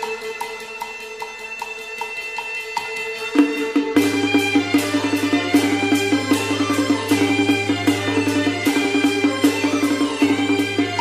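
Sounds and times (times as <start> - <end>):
gong and drum strokes: 2.9 - 11.0.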